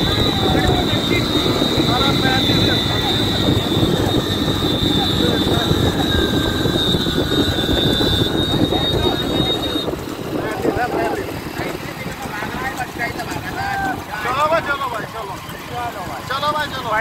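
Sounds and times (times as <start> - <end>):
wind noise on microphone: 0.0 - 14.2
motorcycle engine running: 0.0 - 17.0.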